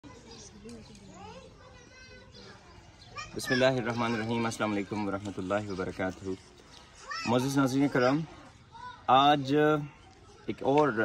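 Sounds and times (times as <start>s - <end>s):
children talking and playing: 0.0s - 11.0s.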